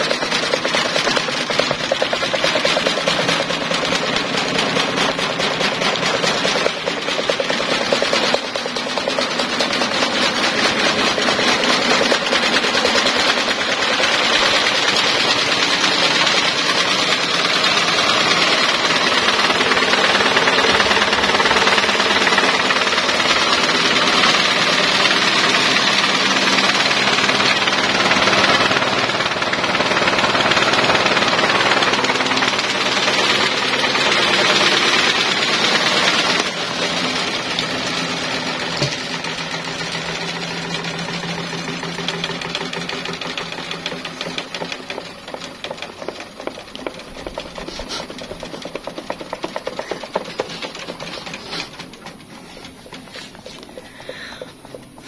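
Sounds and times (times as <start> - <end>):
electric fan rattle and whir: 0.0 - 55.0.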